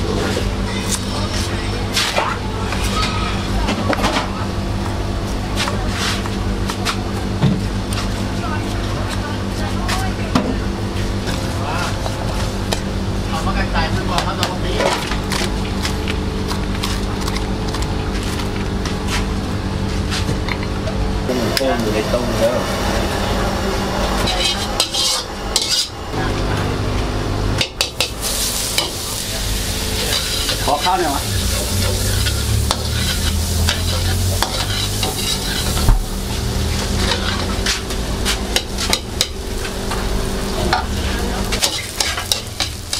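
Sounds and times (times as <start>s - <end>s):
steady low hum: 0.0s - 42.9s
metal ladle scraping a wok: 24.2s - 26.0s, 30.0s - 39.4s
egg sizzling in hot oil: 28.0s - 37.5s.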